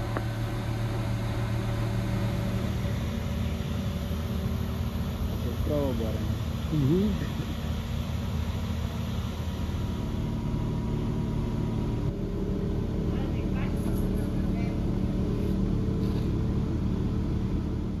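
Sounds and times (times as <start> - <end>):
diesel engine running: 0.0 - 18.0.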